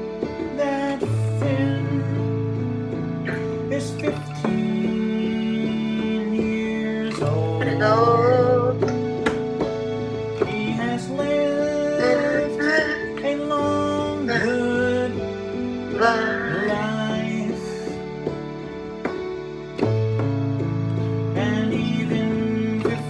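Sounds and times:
person singing: 0:00.0 - 0:09.7, 0:10.3 - 0:18.8, 0:21.0 - 0:23.0
electronic keyboard chords: 0:00.0 - 0:23.0.

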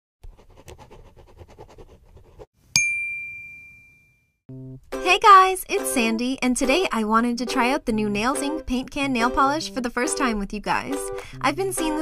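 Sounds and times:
bell-like ding: 0:02.7 - 0:04.4.

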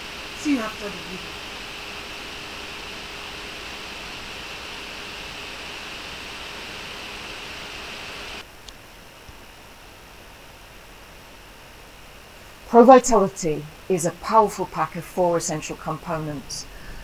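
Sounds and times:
background hiss: 0:00.0 - 0:15.3
faint hum: 0:00.0 - 0:17.0.

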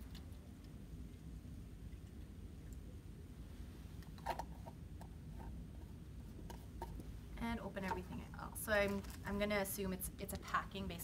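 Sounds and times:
water pouring faintly: 0:00.0 - 0:04.1.

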